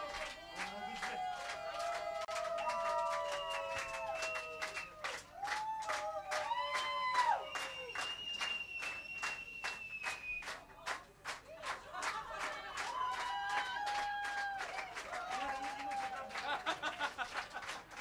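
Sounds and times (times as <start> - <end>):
crowd clapping in unison: 0.0 - 18.0
whistles from crowd: 2.5 - 5.1, 6.7 - 10.6.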